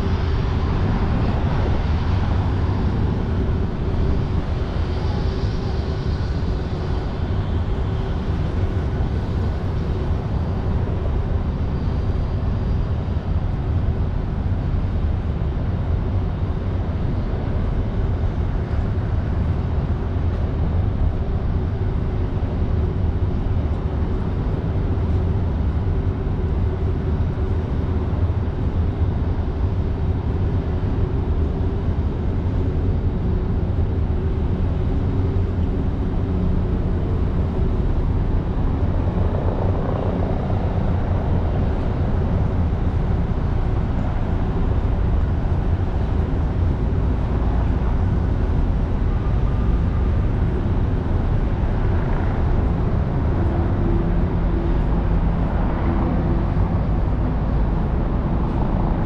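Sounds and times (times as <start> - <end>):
wind rumble on microphone: 0.0 - 59.0
highway traffic noise: 29.6 - 59.0.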